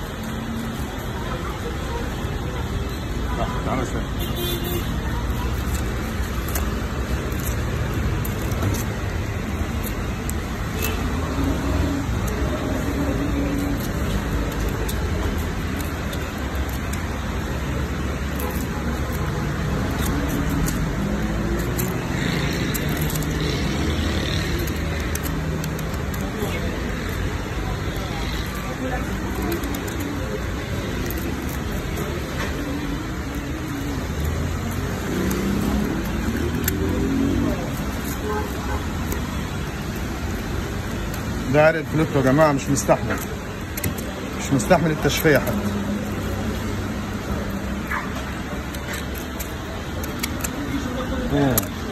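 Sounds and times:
faint indistinct voices: 0.0s - 51.9s
road traffic rumble: 0.0s - 51.9s.

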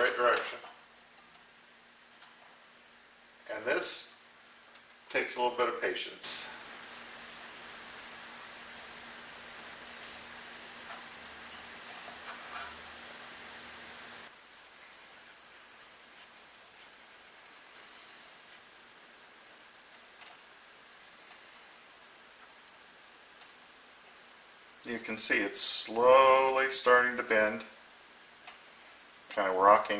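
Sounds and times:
steady hiss: 0.0s - 29.9s.

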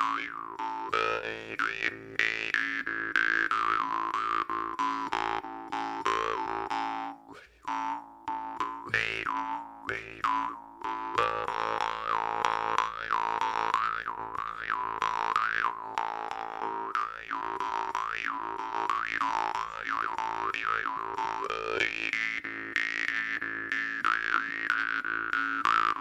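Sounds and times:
jaw harp playing: 0.0s - 26.0s.

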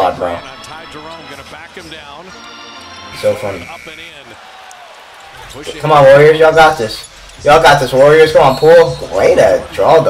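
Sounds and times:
man's voice: 0.0s - 4.4s, 5.4s - 10.0s
basketball game broadcast: 0.0s - 10.0s.

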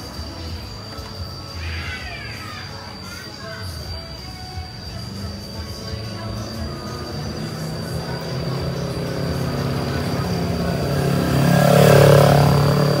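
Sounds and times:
motorcycle riding past: 5.0s - 13.0s.

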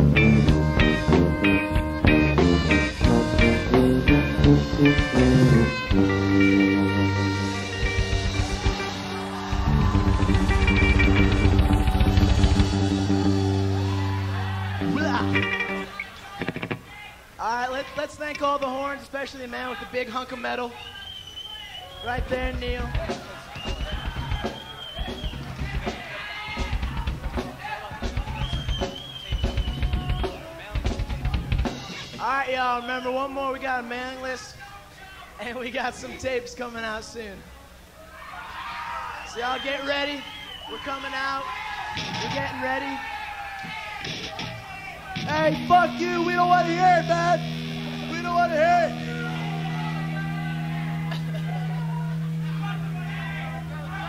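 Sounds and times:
drum kit played loosely: 0.0s - 16.9s, 22.0s - 32.6s, 41.9s - 42.8s, 43.7s - 54.0s
high steady whistle: 20.7s - 22.3s, 23.6s - 25.5s, 28.4s - 30.4s, 39.1s - 41.0s.

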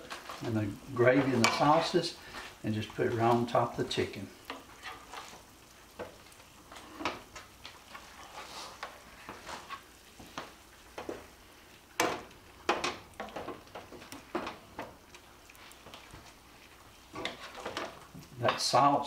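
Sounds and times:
spoon scraping a skillet: 0.0s - 18.8s
sauce slopping: 4.5s - 18.4s.

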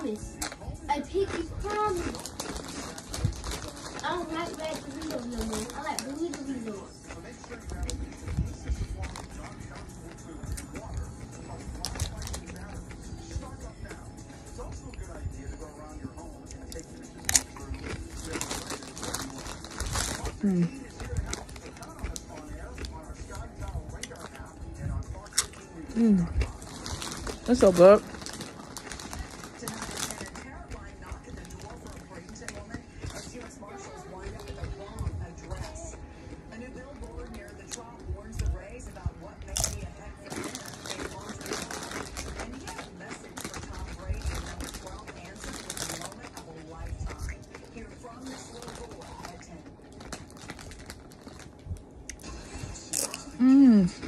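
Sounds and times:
faint music or voices: 0.0s - 54.0s
person chewing crunchy food: 0.1s - 54.0s.

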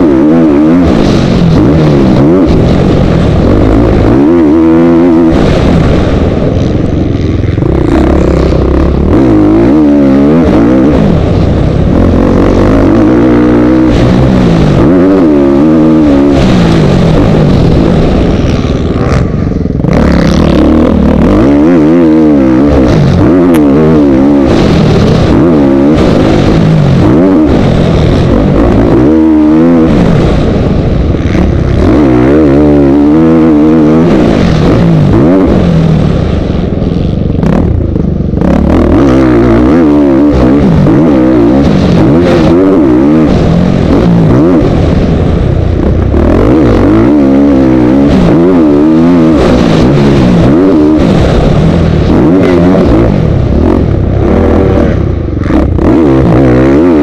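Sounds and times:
motocross bike engine revving: 0.0s - 57.0s
steady rush of noise: 0.0s - 57.0s.

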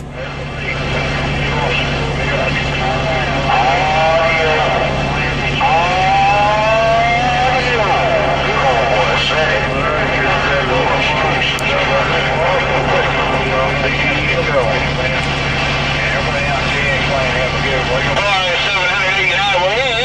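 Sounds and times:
distorted radio voices: 0.0s - 20.0s
low hum: 0.0s - 20.0s
radio static hiss: 0.0s - 20.0s.

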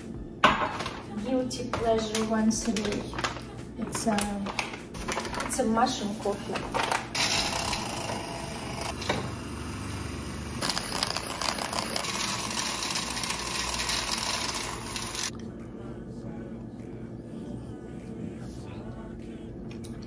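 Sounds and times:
milk frother whirring hiss: 7.2s - 15.3s.

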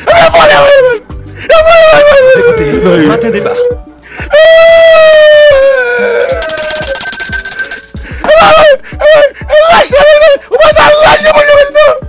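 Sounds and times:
high electronic ringing tone: 6.2s - 8.1s.

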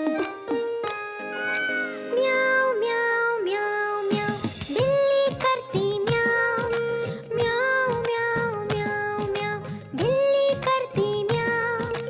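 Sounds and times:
children's song instrumental music: 0.0s - 12.0s.

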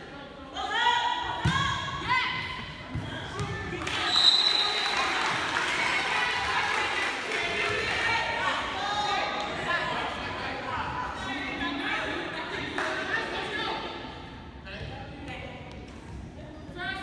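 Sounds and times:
crowd cheering and chattering: 2.0s - 17.0s
shrill whistle: 4.0s - 4.9s.

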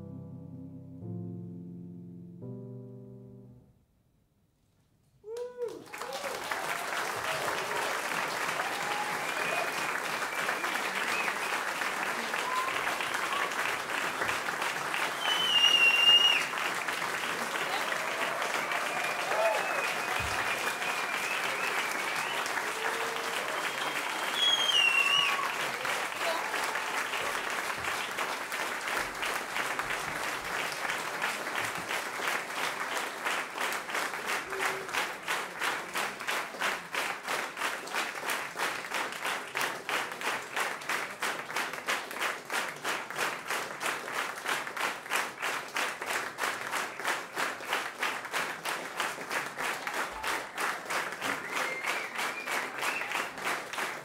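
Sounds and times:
cheering voices: 5.3s - 28.1s
audience applauding: 5.3s - 54.0s
rhythmic clapping in unison: 5.9s - 54.0s
loud whistles: 15.0s - 16.5s, 18.7s - 22.6s, 23.4s - 25.6s, 51.3s - 53.4s.

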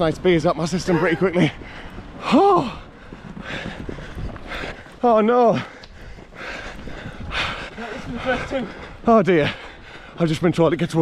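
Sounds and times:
running footsteps on tarmac: 0.0s - 11.0s
runner breathing hard: 0.8s - 10.6s.

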